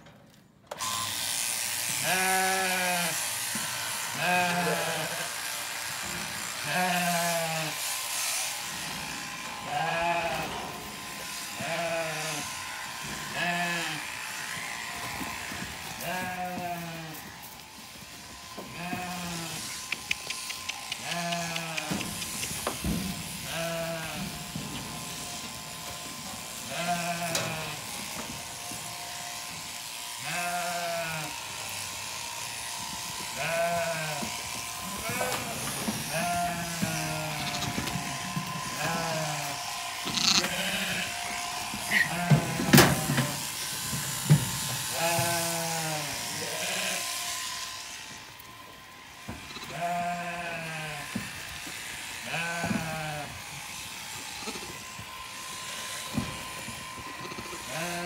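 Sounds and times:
electric shearing clippers running: 0:00.7 - 0:58.0
sheep bleating: 0:01.9 - 0:08.3, 0:09.3 - 0:10.6, 0:11.2 - 0:17.5, 0:18.7 - 0:22.5, 0:23.4 - 0:24.4, 0:26.6 - 0:28.0, 0:30.2 - 0:31.5, 0:32.1 - 0:43.6, 0:44.9 - 0:47.4, 0:49.4 - 0:51.1, 0:52.2 - 0:53.4, 0:57.2 - 0:58.0.

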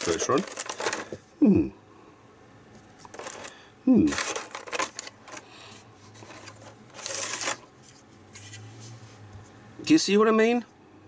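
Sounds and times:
plastic scraping rustle: 0:00.0 - 0:01.2, 0:03.0 - 0:08.6
plastic rubbing and crackling: 0:00.0 - 0:01.3, 0:03.0 - 0:08.0.

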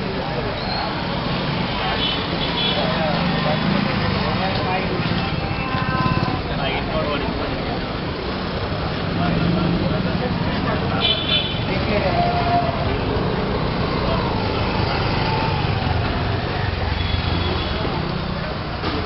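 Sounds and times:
motorcycle and rickshaw engines: 0:00.0 - 0:19.0
people's voices: 0:00.0 - 0:19.0.

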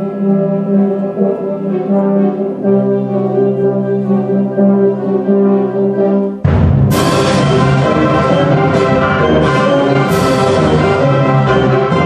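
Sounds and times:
concert band playing: 0:00.0 - 0:12.0.

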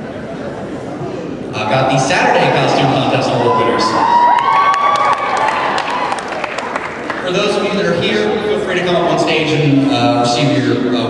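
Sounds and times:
audience cheering: 0:02.0 - 0:07.2
scattered clapping: 0:04.2 - 0:07.6.

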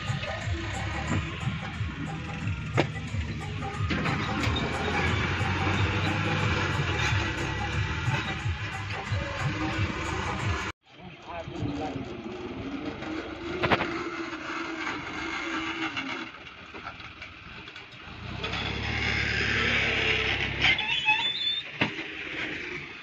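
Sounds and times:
music: 0:00.0 - 0:10.7
voices: 0:00.0 - 0:14.3
tractor engines running: 0:00.0 - 0:23.0.

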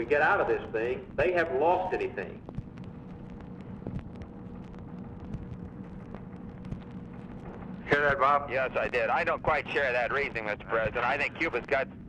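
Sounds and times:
low hum: 0:00.0 - 0:12.0
faint clicks: 0:02.4 - 0:08.2.

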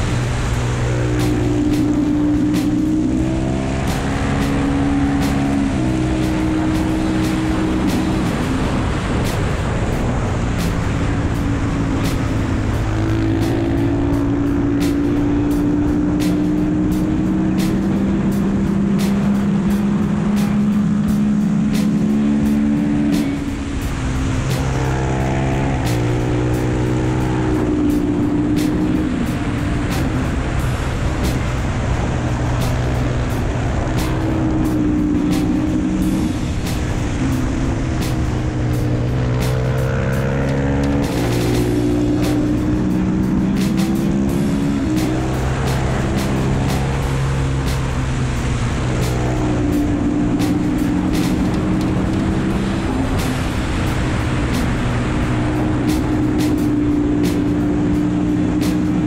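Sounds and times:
motorbike engine revving: 0:00.0 - 0:59.0
wind noise: 0:00.0 - 0:59.0.

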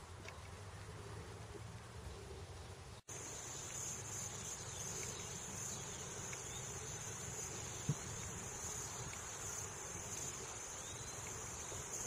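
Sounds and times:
high-pitched insect chorus: 0:03.1 - 0:12.0.

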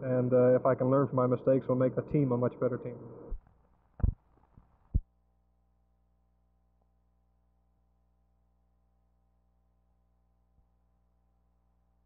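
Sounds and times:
faint electrical hum: 0:00.0 - 0:12.0
dull low thumps: 0:04.0 - 0:04.2.

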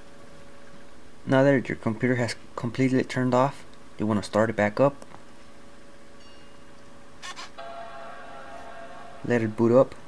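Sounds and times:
computer startup chime: 0:07.6 - 0:10.0.

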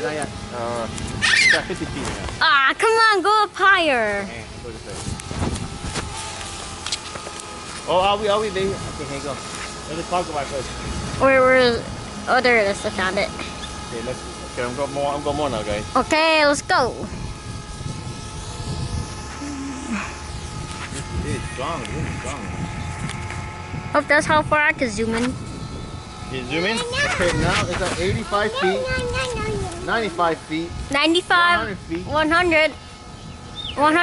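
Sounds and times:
faint steady hum: 0:00.0 - 0:34.0
wind gusting on microphone: 0:04.4 - 0:06.2, 0:15.4 - 0:34.0.

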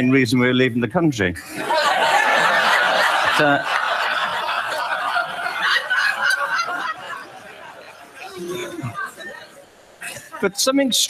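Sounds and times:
audience laughing: 0:01.4 - 0:10.5.

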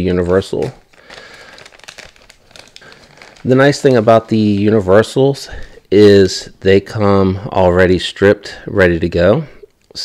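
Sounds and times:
plastic bag crinkling: 0:00.0 - 0:05.4.

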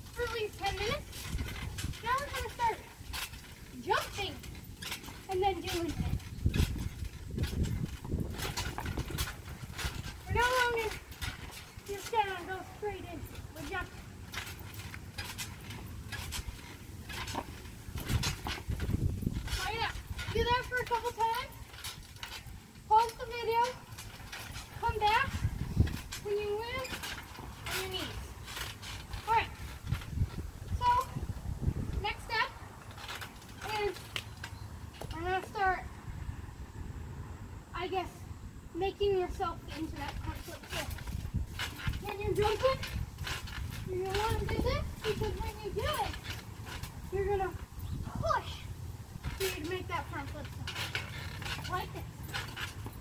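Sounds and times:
trampoline thumps: 0:00.0 - 0:36.0, 0:38.7 - 0:53.0.

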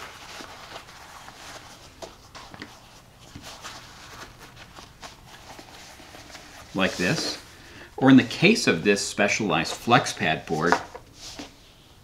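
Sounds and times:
soft rustling and scuffing: 0:00.0 - 0:07.5, 0:09.5 - 0:12.0.

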